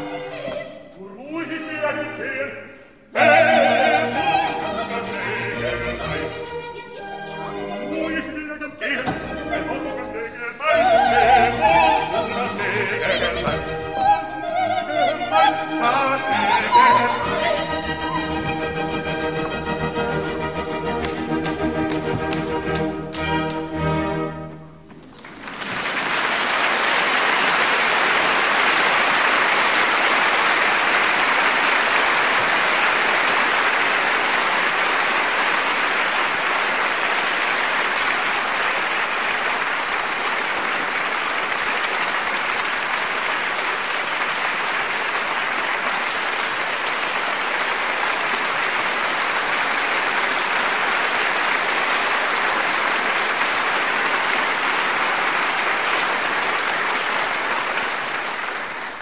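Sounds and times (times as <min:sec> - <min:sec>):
audience applauding: 0:21.0 - 0:23.6, 0:24.9 - 0:59.0.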